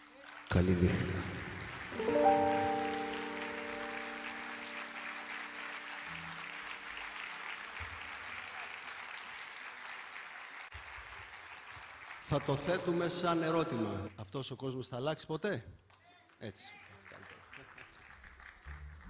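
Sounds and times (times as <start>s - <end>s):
audience applause: 0.0s - 13.2s, 16.7s - 19.0s
acoustic ensemble chord: 1.8s - 7.3s.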